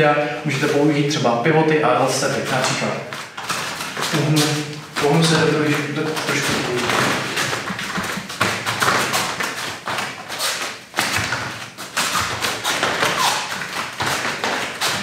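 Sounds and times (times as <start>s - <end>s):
bare feet on gym mats: 0.2s - 15.0s.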